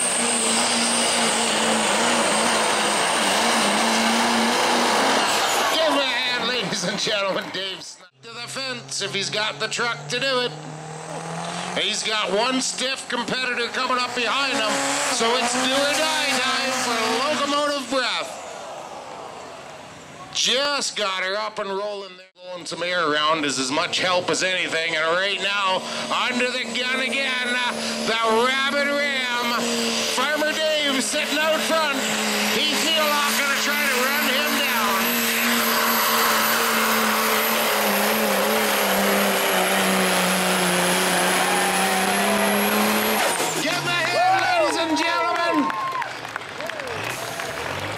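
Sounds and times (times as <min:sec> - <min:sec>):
diesel truck engine revving: 0:00.0 - 0:20.8, 0:22.9 - 0:47.9.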